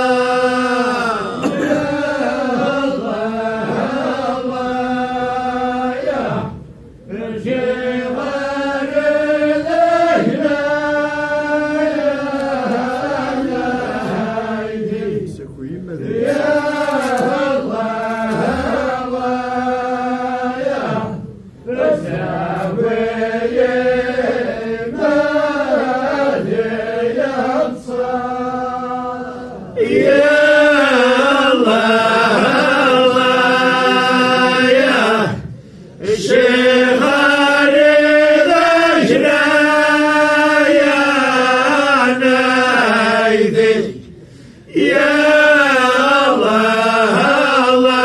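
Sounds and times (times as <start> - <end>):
group chanting in unison: 0.0 - 48.0.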